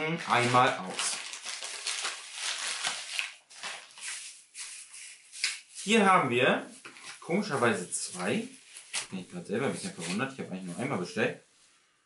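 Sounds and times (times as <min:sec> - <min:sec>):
plastic packaging rustling: 0:00.2 - 0:05.9, 0:06.7 - 0:09.2.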